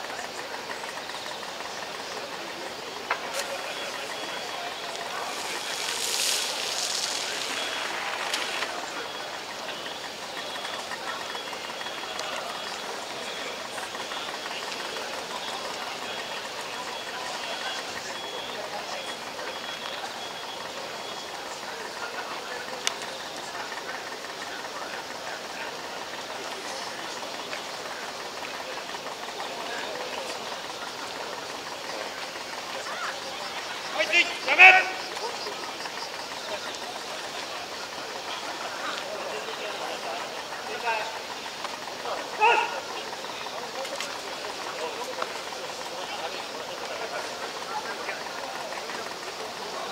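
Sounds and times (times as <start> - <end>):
fire pump engine running: 0.0 - 49.9
noisy hiss: 0.0 - 49.9.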